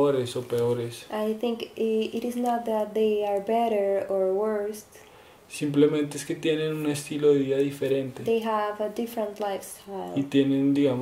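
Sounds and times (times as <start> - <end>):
person talking: 5.5 - 11.0.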